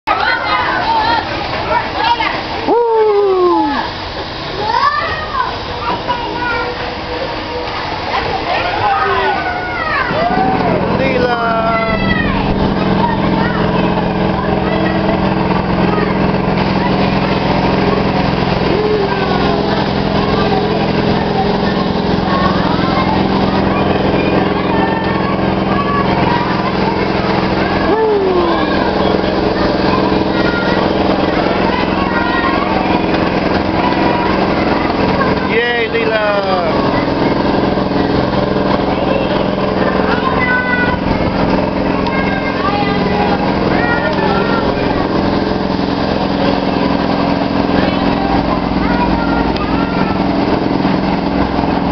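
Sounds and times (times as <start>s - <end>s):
children's voices and shouts: 0.1s - 51.9s
ride motor droning: 0.1s - 51.9s.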